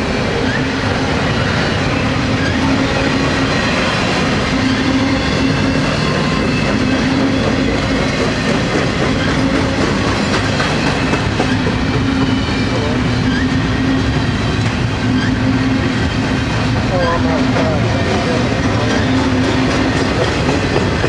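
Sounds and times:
freight train wheels rumbling: 0:00.0 - 0:21.0
wheels clicking over rail joints: 0:05.3 - 0:12.4, 0:18.6 - 0:21.0.

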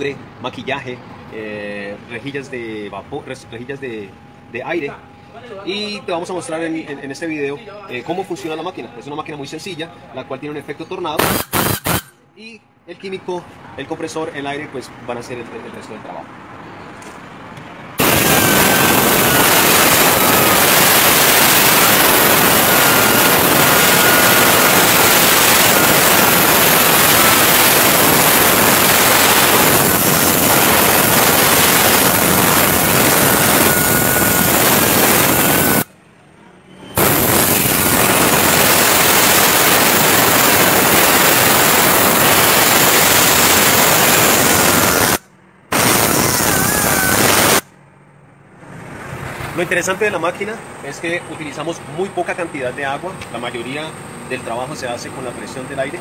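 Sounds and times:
compressed air gun blasting: 0:11.2 - 0:12.2, 0:18.0 - 0:35.9, 0:37.0 - 0:47.7
faint high whistle: 0:18.0 - 0:25.0, 0:31.9 - 0:35.9, 0:36.5 - 0:37.3, 0:46.0 - 0:47.6.

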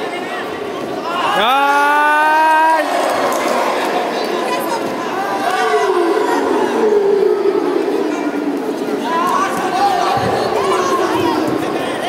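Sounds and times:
loud long human shout: 0:01.0 - 0:12.0.

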